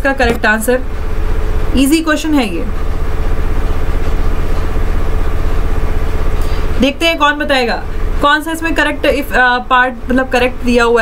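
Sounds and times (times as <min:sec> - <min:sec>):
woman's voice: 0:00.0 - 0:00.9, 0:01.7 - 0:02.8, 0:06.8 - 0:11.0
loud pulsing low hum: 0:00.0 - 0:11.0.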